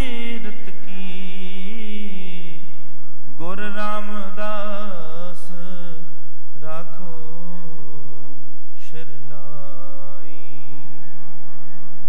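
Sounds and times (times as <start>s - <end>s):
man singing devotional song: 0.0s - 11.2s.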